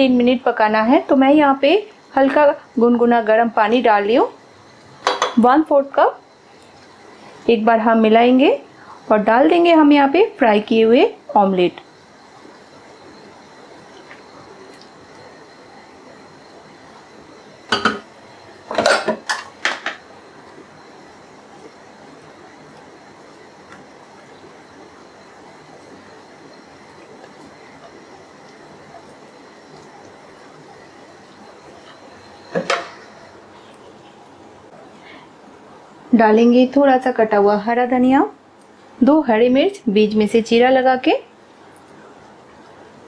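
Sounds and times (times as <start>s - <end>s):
low steady hiss: 0.0s - 43.0s
utensils knocking on a pan: 5.0s - 5.4s, 17.7s - 18.1s.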